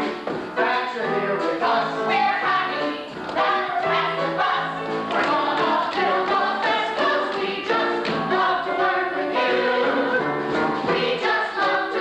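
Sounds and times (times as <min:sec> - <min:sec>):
musical accompaniment: 0:00.0 - 0:12.0
ensemble singing in chorus: 0:01.4 - 0:12.0.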